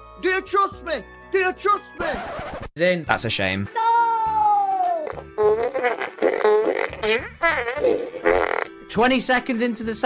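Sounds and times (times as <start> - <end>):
background music with low beat: 2.0 - 10.0
man wailing: 3.8 - 5.3.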